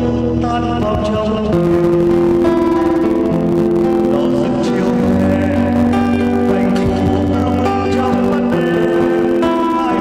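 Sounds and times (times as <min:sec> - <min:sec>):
acoustic guitar playing: 0:00.0 - 0:10.0.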